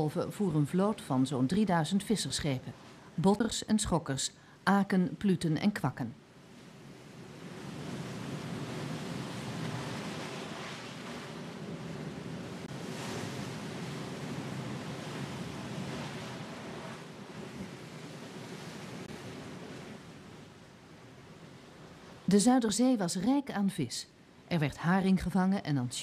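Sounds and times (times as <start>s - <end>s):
waves crashing: 6.3s - 23.5s.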